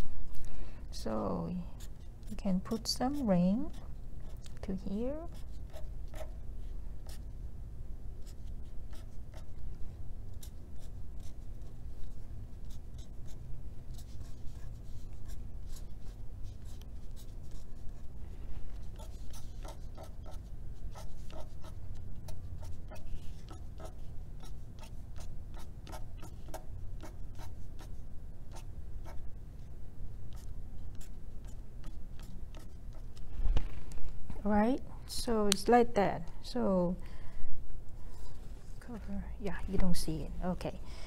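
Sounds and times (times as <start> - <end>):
low steady hum: 0.0 - 41.0
marker pen tapping and scratching: 1.8 - 6.4, 18.8 - 29.2, 30.3 - 33.6.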